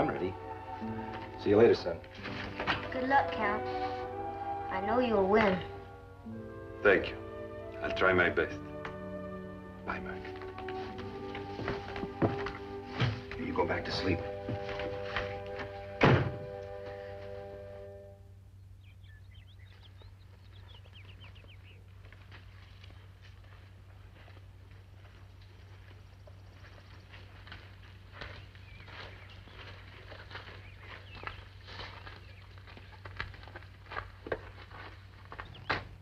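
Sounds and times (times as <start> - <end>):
held orchestral chord: 0.0 - 18.4
light footsteps and clicks: 10.0 - 17.4, 19.7 - 36.0
door shutting thunk: 16.0 - 16.6
faint chirping: 18.0 - 21.9.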